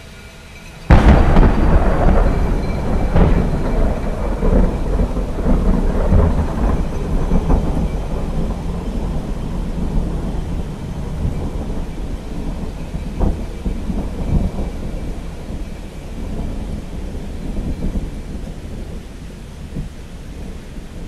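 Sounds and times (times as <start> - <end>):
rain hissing: 0.0 - 21.0
rolling thunder: 0.9 - 21.0
thunder crack: 0.9 - 21.0.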